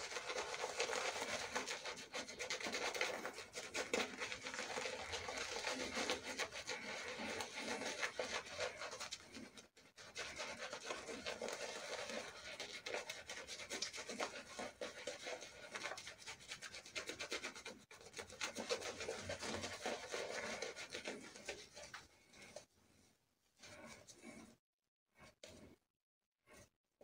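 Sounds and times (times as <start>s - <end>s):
shaving brush scrubbing lather: 0.0s - 22.7s.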